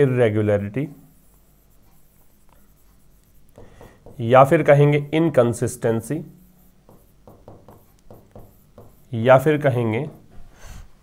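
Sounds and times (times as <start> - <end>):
stylus scratching and tapping screen: 0.6 - 10.3.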